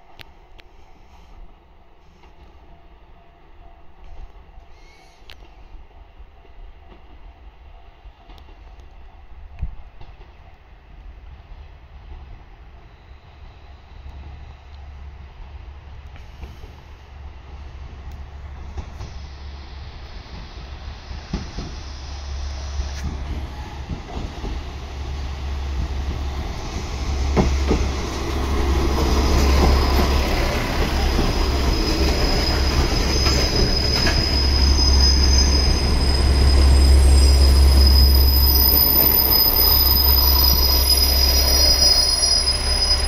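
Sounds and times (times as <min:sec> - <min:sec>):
diesel train rumble approaching: 0:10.2 - 0:43.0.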